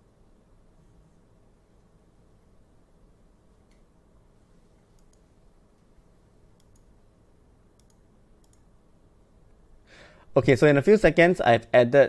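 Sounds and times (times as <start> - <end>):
faint computer mouse clicks: 3.6 - 3.9, 4.8 - 5.9, 6.5 - 7.0, 7.7 - 8.7.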